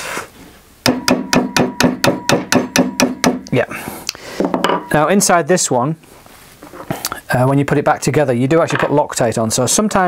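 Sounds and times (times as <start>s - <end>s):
mallet tapping on metal: 0.8s - 3.5s
faint metallic ringing: 4.6s - 5.2s.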